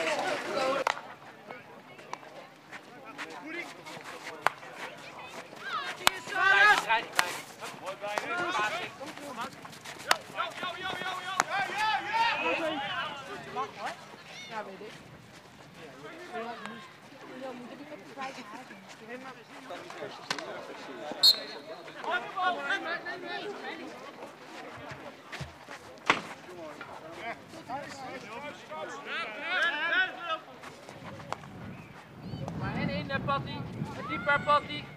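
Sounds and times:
indoor chatter: 0:00.0 - 0:34.9
players shouting: 0:04.8 - 0:14.8, 0:33.9 - 0:34.9.

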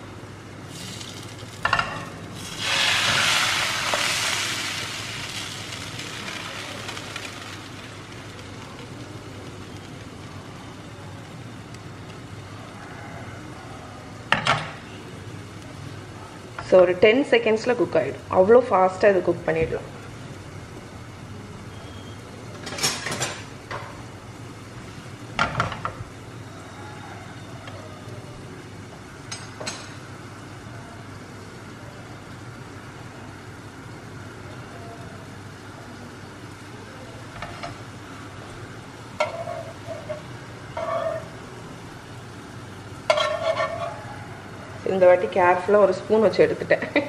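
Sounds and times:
batter sizzling in frying pan: 0:00.4 - 0:13.4, 0:28.6 - 0:47.0
metal utensils scraping pan: 0:39.2 - 0:41.4, 0:43.1 - 0:44.0.

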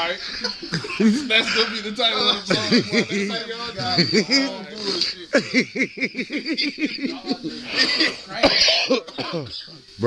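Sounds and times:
voices: 0:00.0 - 0:10.0
laughter: 0:00.2 - 0:01.6, 0:02.5 - 0:04.5, 0:05.3 - 0:08.3
man coughing: 0:00.7 - 0:01.8, 0:02.5 - 0:03.2, 0:07.0 - 0:09.6.

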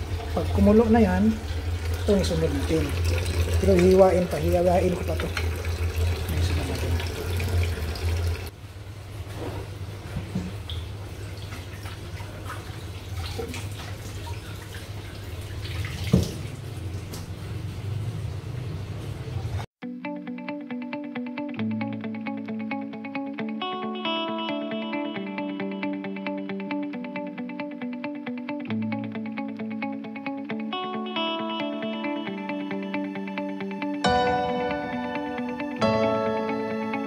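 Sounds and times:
background guitar music: 0:00.0 - 0:07.7, 0:19.8 - 0:37.0.

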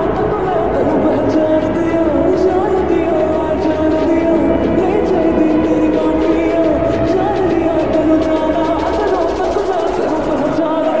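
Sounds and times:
backing music: 0:00.0 - 0:11.0
person singing: 0:00.0 - 0:11.0.

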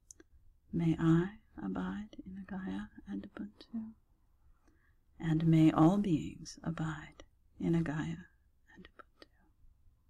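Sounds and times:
woman whispering: 0:00.8 - 0:04.0, 0:05.2 - 0:09.5
woman speaking: 0:05.2 - 0:08.3.

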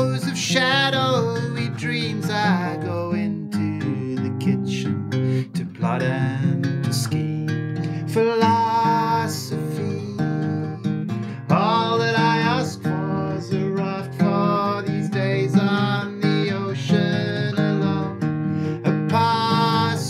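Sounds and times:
acoustic guitar strummed: 0:00.0 - 0:20.0
man singing: 0:00.0 - 0:20.0.

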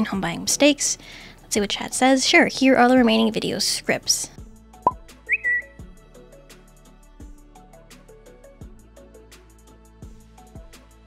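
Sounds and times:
quiet background music with beat: 0:00.0 - 0:11.0
whistle-like sound effect: 0:05.3 - 0:05.8.

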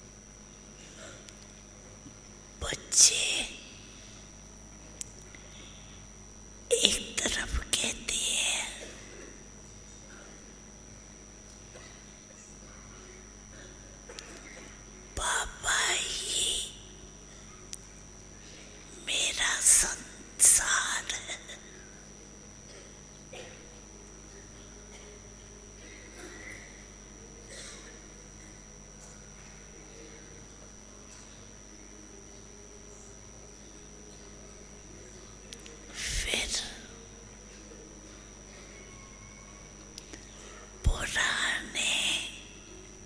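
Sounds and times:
faint high whine: 0:00.0 - 0:43.0
elderly woman speaking softly: 0:02.6 - 0:03.7, 0:06.7 - 0:08.8
breathy whisper into microphone: 0:35.9 - 0:37.0, 0:40.2 - 0:42.5.

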